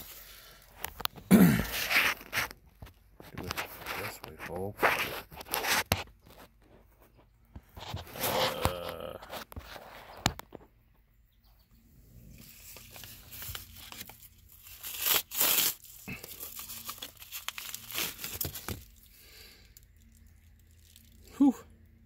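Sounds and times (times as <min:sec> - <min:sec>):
paper envelope tearing: 0:03.4 - 0:06.0, 0:07.8 - 0:09.9, 0:12.4 - 0:19.0.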